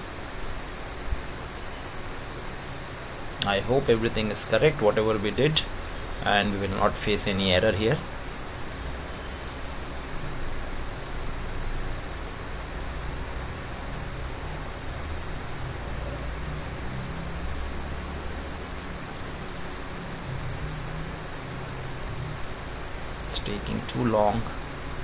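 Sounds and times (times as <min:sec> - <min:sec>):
background hiss: 0:00.0 - 0:25.0
low hum: 0:00.0 - 0:25.0.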